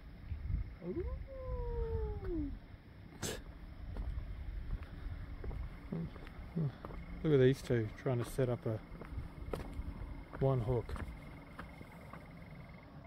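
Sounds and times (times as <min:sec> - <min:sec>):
low rumble: 0:00.0 - 0:12.8.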